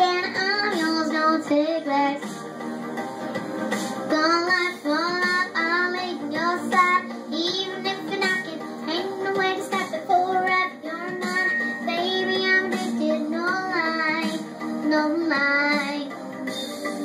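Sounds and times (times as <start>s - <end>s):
backing track: 0.0s - 17.0s
girl singing pop song: 0.0s - 17.0s.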